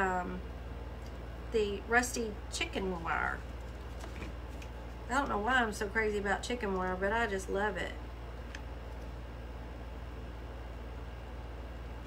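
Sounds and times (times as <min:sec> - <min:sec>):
low hum with hiss: 0:00.0 - 0:12.0.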